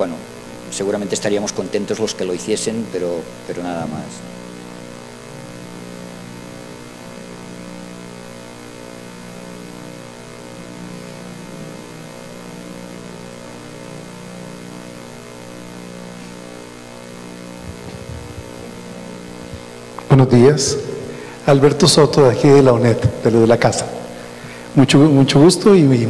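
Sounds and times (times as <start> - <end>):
electrical mains hum: 0.0 - 26.0.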